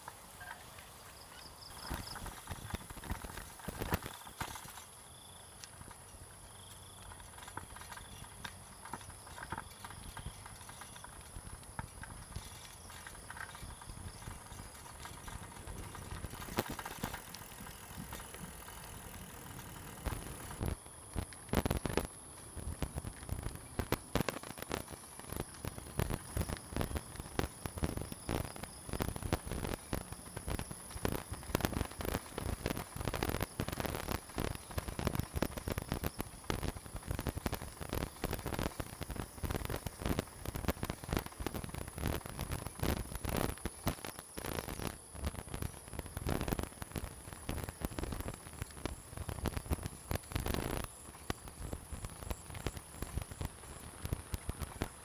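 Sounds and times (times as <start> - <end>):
bicycle rattling on rough path: 0.0 - 55.0.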